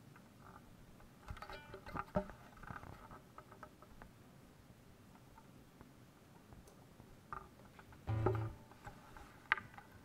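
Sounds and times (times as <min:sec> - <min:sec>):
brief ringing tone: 0:08.1 - 0:08.8
guitar being handled: 0:08.1 - 0:09.8.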